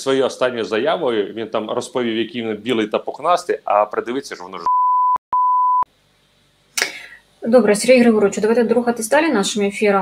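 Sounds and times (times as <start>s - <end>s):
speech: 0.0s - 4.7s, 7.4s - 10.0s
high-pitched censor bleep: 4.7s - 5.9s.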